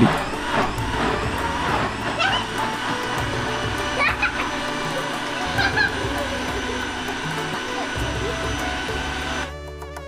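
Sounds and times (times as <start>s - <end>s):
electric mixer grinder running: 0.0s - 10.0s.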